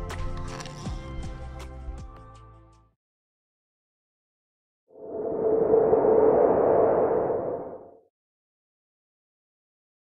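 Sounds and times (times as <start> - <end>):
held low tone: 5.0 - 8.0
whoosh: 5.0 - 8.0.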